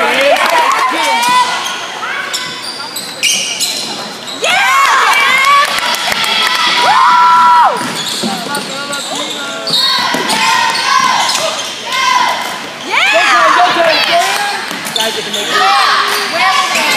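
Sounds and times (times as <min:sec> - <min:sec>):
sneakers squeaking: 0:00.9 - 0:04.6, 0:07.7 - 0:16.9
spectators shouting: 0:04.4 - 0:08.0.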